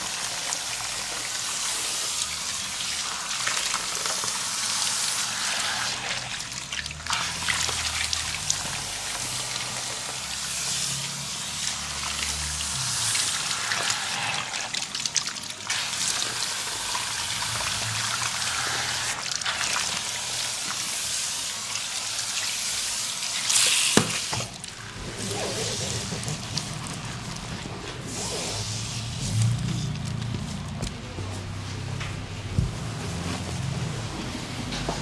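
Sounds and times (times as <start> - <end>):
sink sprayer water running: 0.0 - 35.0.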